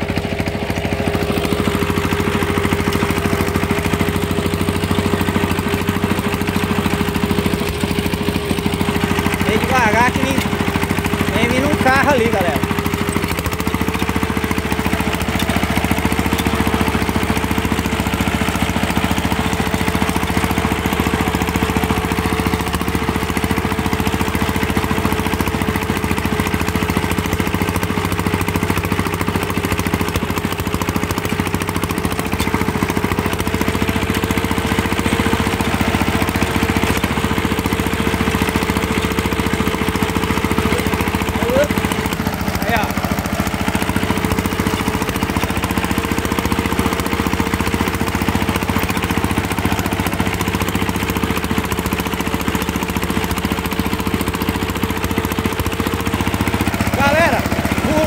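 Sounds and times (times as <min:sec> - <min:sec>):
diesel engine running: 0:00.0 - 0:58.0.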